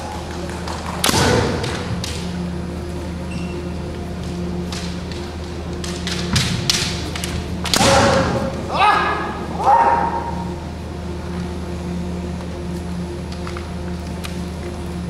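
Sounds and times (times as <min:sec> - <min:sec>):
bamboo swords clashing: 0:04.6 - 0:10.3
loud fencer shouts: 0:07.8 - 0:10.3.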